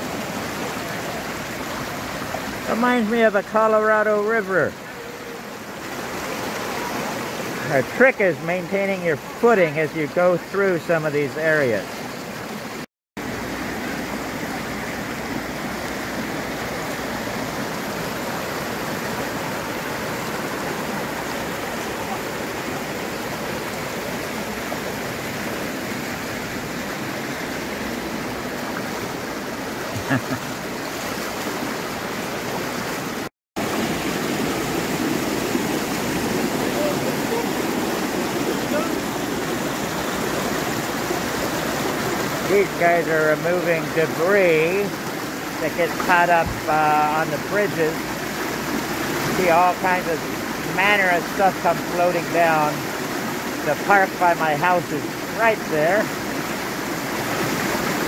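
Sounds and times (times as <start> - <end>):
floodwater rushing over a kerb: 0.0 - 58.0.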